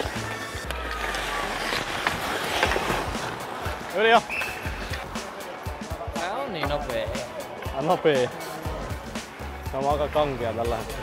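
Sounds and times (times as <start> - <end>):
background music: 0.0 - 11.0
men's voices: 2.1 - 11.0.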